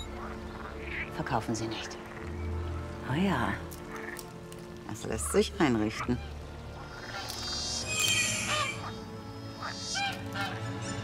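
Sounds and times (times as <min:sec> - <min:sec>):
orchestral film music: 0:00.0 - 0:11.0
goose-like honking calls: 0:05.1 - 0:11.0.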